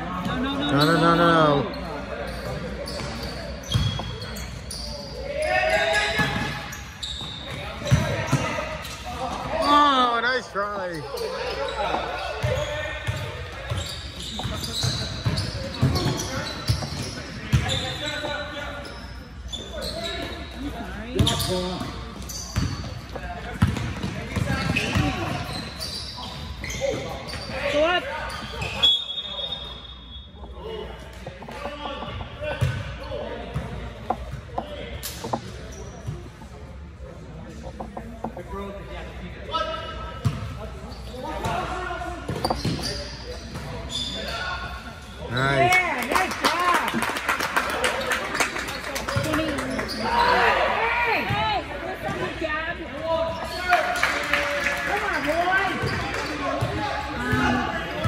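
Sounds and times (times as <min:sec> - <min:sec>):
basketball bouncing on gym floor: 0:22.6 - 0:22.9, 0:23.6 - 0:25.4.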